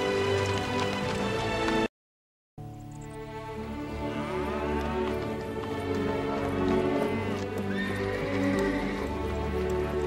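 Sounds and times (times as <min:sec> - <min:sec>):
hooves clattering: 0:00.0 - 0:01.9, 0:02.6 - 0:10.0
orchestral string music: 0:00.0 - 0:01.9, 0:02.6 - 0:10.0
horse whinnying: 0:07.0 - 0:09.6.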